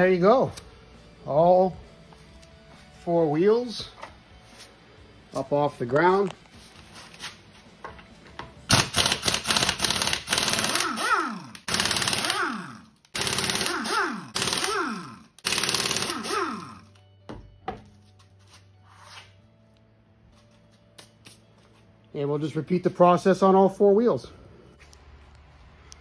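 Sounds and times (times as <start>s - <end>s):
air impact wrench hammering: 8.7s - 16.9s
impact wrench spinning down: 8.7s - 16.9s.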